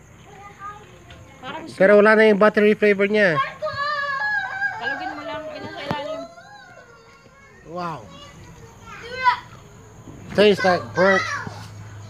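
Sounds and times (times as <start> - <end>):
low background noise: 0.0 - 12.0.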